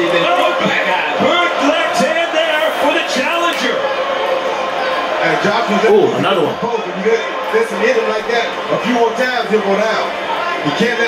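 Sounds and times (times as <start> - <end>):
crowd noise: 0.0 - 11.0
man speaking: 5.7 - 6.6.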